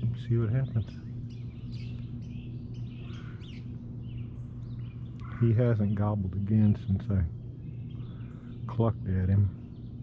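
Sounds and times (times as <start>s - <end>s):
songbirds chirping: 0.0s - 10.0s
steady low hum: 0.0s - 10.0s.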